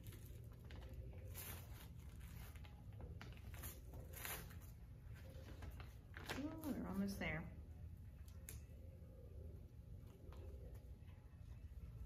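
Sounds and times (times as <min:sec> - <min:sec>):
tape being peeled off: 0:00.0 - 0:06.8
low room hum: 0:00.0 - 0:12.0.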